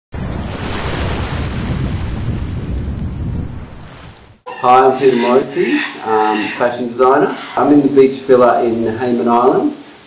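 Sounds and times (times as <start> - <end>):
low rushing noise: 4.4 - 10.0.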